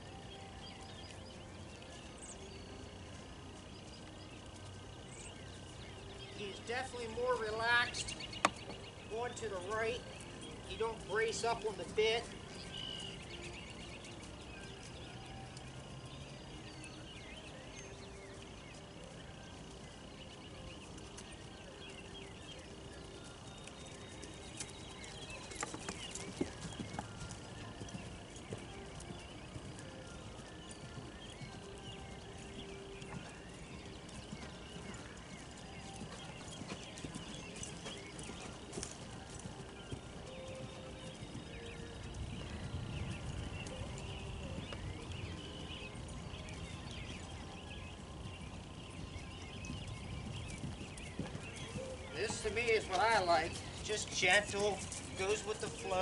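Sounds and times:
horse hoofbeats on grass: 0.0s - 56.0s.

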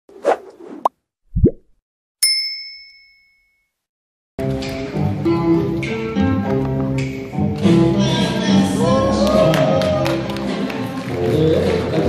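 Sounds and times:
brief swish: 0.1s - 1.7s
bright bell-like ding: 2.2s - 3.8s.

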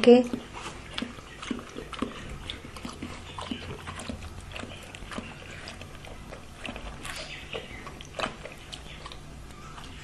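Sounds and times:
dog lapping water: 0.0s - 10.0s.

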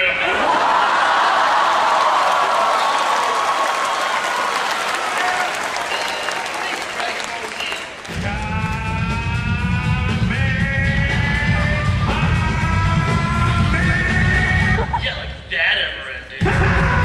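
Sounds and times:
audience applauding: 0.3s - 9.0s.

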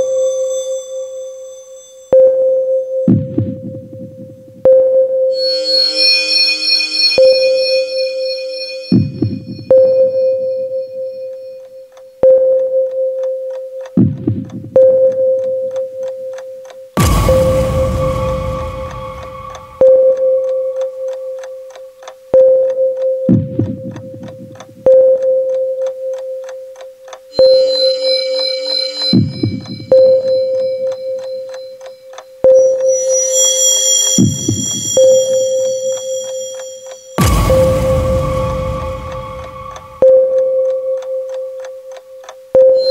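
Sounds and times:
held synth tone: 4.6s - 11.6s, 17.0s - 22.0s, 27.3s - 41.6s, 42.6s - 42.9s
high synth tones: 4.7s - 11.6s, 17.0s - 22.0s, 27.3s - 41.6s, 42.6s - 42.9s
clock-like ticking: 4.7s - 42.9s
sharp electronic hit: 5.4s - 9.8s, 17.0s - 20.8s, 32.9s - 40.4s
synth bass: 17.0s - 20.2s, 37.2s - 40.4s.

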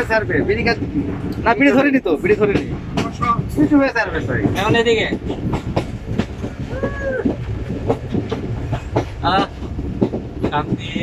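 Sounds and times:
train rumble: 0.0s - 11.0s
wheels clacking over rail joints: 0.0s - 11.0s.

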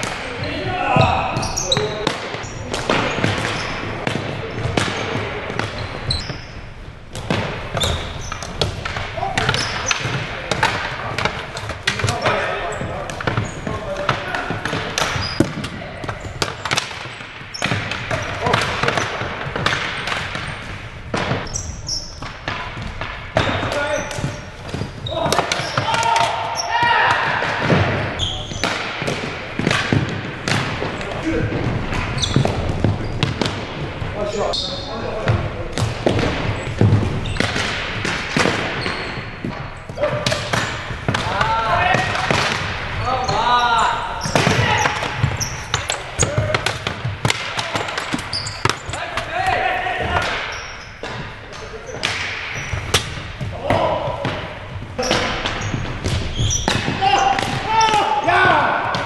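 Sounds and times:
players calling out: 0.0s - 6.6s, 23.4s - 35.4s, 38.6s - 59.0s
sticks striking ball and floor: 0.0s - 34.3s, 35.2s - 59.0s
ball bouncing: 0.0s - 34.6s, 35.2s - 59.0s.

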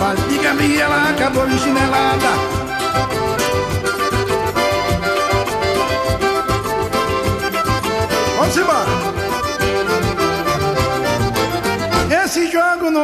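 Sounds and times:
drum and percussion beat: 0.0s - 12.3s
accordion melody: 0.0s - 12.9s.

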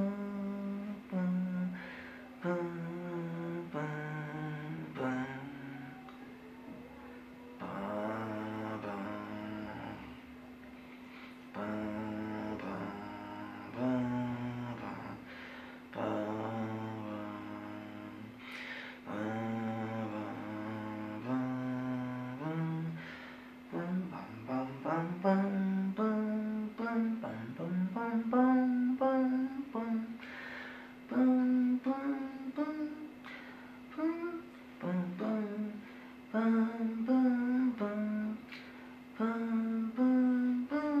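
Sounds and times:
constant hum: 0.0s - 41.0s.

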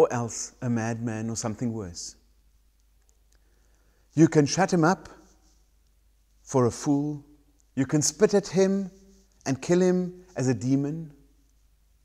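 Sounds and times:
man's voice: 0.0s - 2.2s, 4.2s - 5.2s, 6.5s - 7.2s, 7.8s - 11.1s.

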